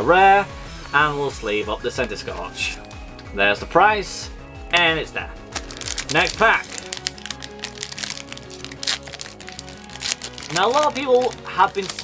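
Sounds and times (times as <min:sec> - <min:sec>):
background music with held notes: 0:00.0 - 0:12.0
foil wrapper crinkling: 0:05.5 - 0:12.0
foil wrapper ripping: 0:05.5 - 0:12.0.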